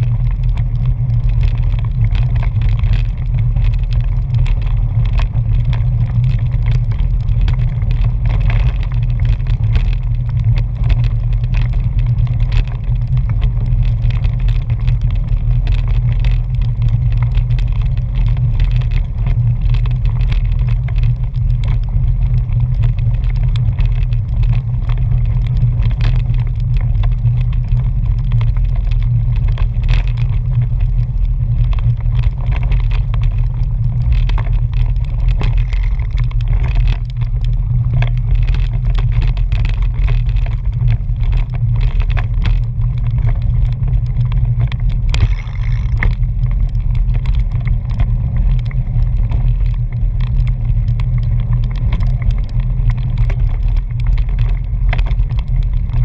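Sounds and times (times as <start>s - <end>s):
tyres crackling over gravel: 0.0s - 56.0s
wind and road rumble: 0.0s - 56.0s.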